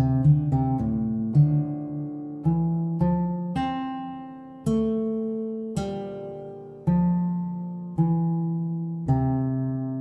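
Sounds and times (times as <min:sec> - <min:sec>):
guitar fingerpicking slow melody: 0:00.0 - 0:10.0.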